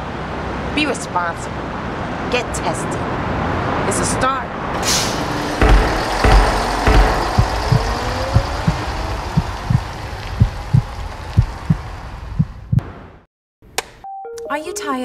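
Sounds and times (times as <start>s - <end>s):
music drone with rising tone: 5.2s - 12.2s
heartbeat thumps: 5.6s - 12.9s.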